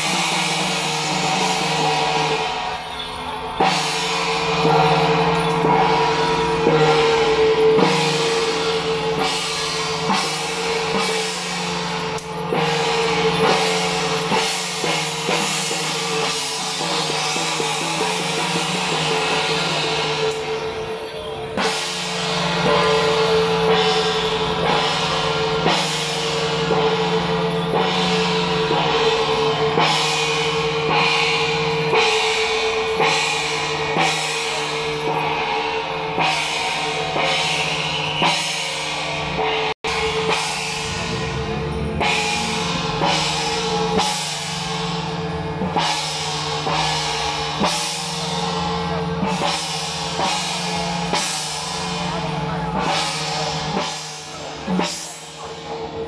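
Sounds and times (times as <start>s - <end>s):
drums and cymbals beating: 0.0s - 56.0s.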